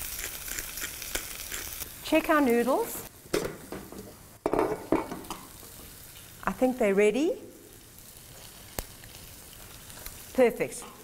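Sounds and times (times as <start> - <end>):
fish sizzling in a hot pan: 0.0 - 3.2, 4.5 - 11.0.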